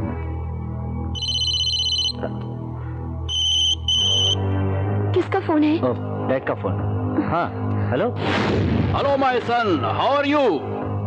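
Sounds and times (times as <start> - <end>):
background music: 0.0 - 11.0
phone ringtone trilling: 1.2 - 2.2, 3.3 - 4.4.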